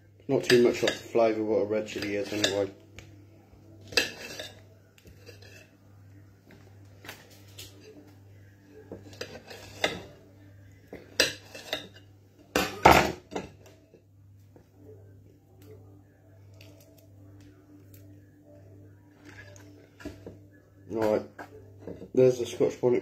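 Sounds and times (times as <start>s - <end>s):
low steady hum: 0.0s - 23.0s
knife scraping on a plate: 1.9s - 2.8s, 3.9s - 5.8s, 8.9s - 10.2s, 11.2s - 12.1s.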